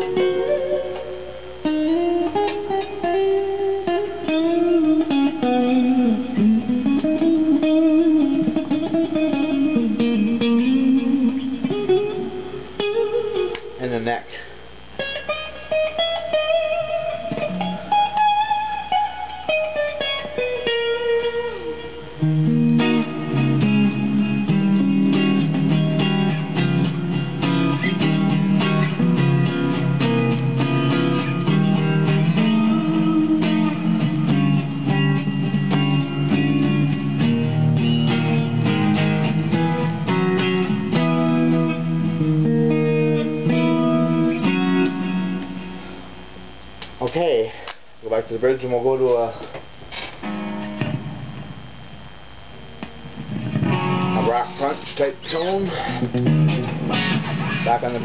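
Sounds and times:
electric guitar chord riff: 0:00.0 - 0:47.0, 0:49.9 - 0:58.0
electric guitar lead lines: 0:00.0 - 0:58.0.

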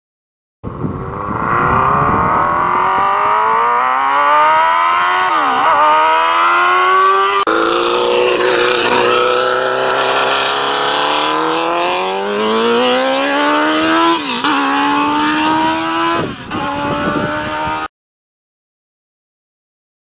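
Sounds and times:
race car engine at full throttle: 0:00.7 - 0:17.9.

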